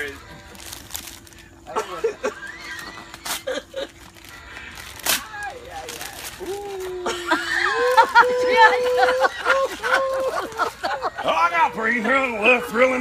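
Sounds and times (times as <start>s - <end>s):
wrapping paper ripping: 0.0s - 1.8s, 2.4s - 9.0s
people laughing: 1.7s - 4.1s, 6.9s - 12.4s
people talking: 5.2s - 13.0s.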